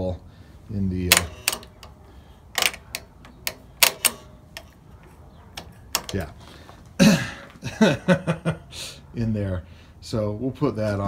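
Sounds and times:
throttle linkage metallic clicks: 1.1 - 6.4.

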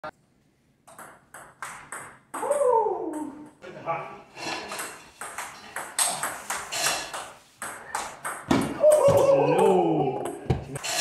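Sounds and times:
table tennis ball hits: 0.9 - 3.4, 4.7 - 9.3.

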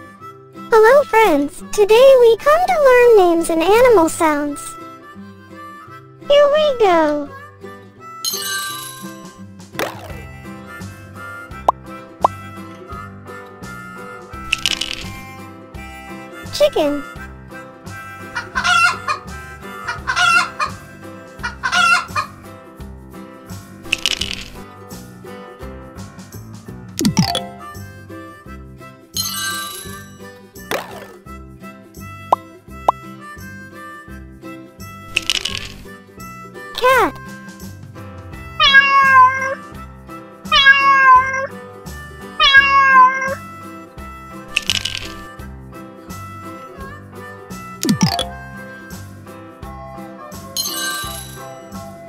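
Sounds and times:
quiet background music: 0.0 - 25.5, 26.9 - 39.7
cat meowing: 38.6 - 39.6, 40.5 - 41.6, 42.4 - 43.4.

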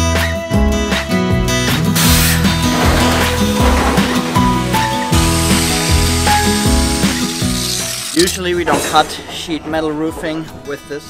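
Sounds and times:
angle grinder cutting metal: 2.0 - 8.4.

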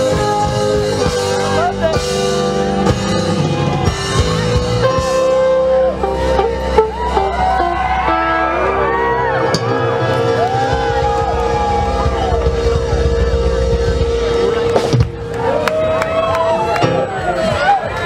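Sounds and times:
rock band holding a chord: 0.0 - 17.3
crowd cheering and whooping: 2.8 - 18.0.

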